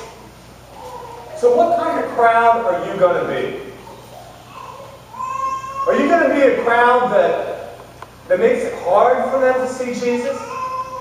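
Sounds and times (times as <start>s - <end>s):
preacher speaking: 1.3s - 3.8s, 5.8s - 10.6s
infant crying: 3.8s - 6.2s, 10.3s - 11.0s.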